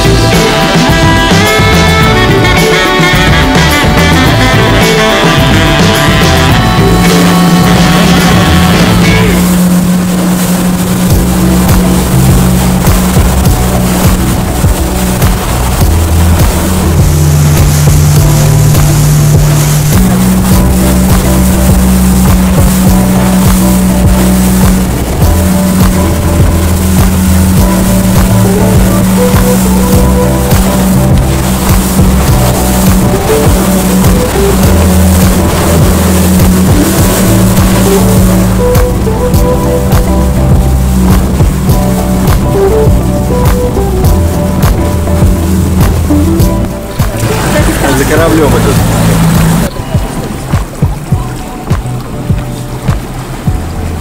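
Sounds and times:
background music with bass line: 0.0s - 54.0s
boat wake rushing and splashing: 0.0s - 54.0s
motorboat running at speed: 0.0s - 54.0s.

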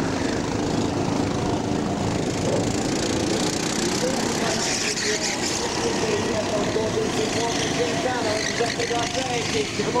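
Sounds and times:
racing kart engines passing: 0.0s - 10.0s.

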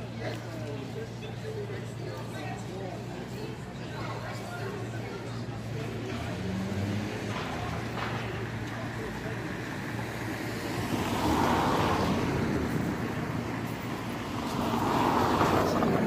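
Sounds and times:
vehicles passing by: 0.0s - 16.0s.

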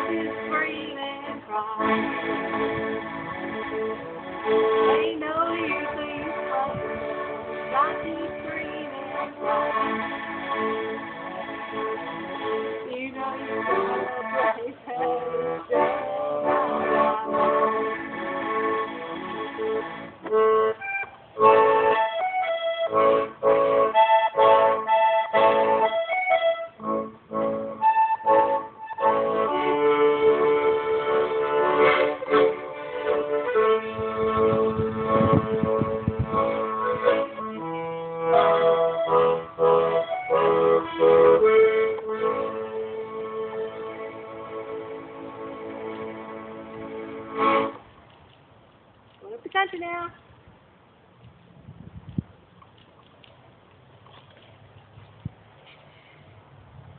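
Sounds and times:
piano accordion chords: 0.0s - 47.9s.

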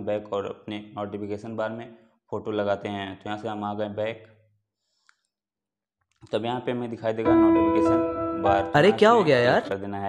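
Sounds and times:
man's voice: 7.0s - 10.0s.

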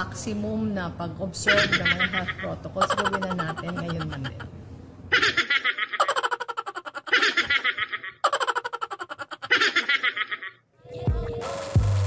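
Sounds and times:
high-pitched giggling laughter: 1.5s - 4.5s, 5.1s - 10.6s.

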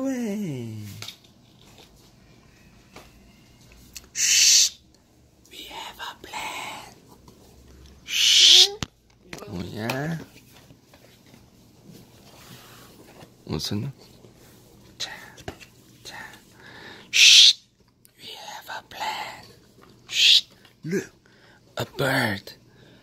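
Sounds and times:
person hushing: 4.1s - 4.8s, 8.1s - 8.8s.

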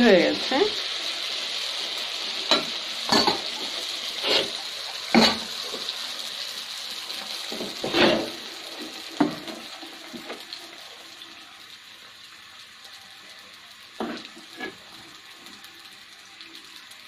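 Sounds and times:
batter sizzling in hot oil: 0.0s - 17.0s.

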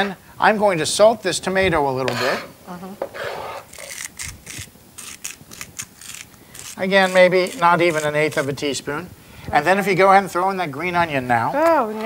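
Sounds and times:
salt grinder crunching clicks: 3.7s - 6.8s.

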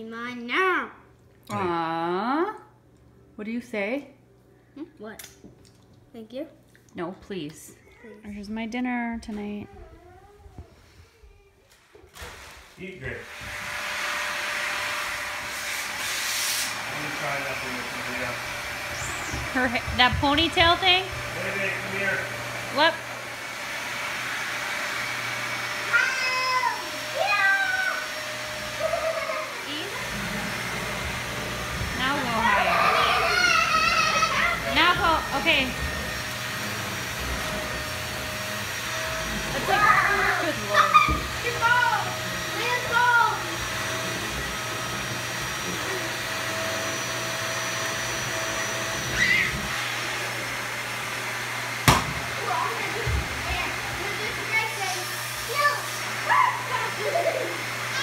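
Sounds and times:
vacuum cleaner humming: 12.2s - 58.0s
high drawn-out cries: 32.3s - 34.6s, 49.1s - 49.7s
child calling out: 32.4s - 34.7s, 55.5s - 58.0s.

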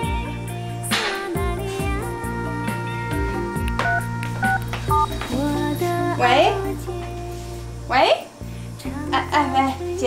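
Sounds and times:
background music: 0.0s - 10.0s
phone keypad beeps: 3.8s - 5.2s.

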